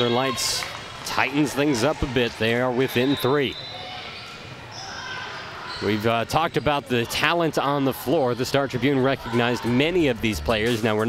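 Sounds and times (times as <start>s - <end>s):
echoing indoor gym din: 0.0s - 11.0s.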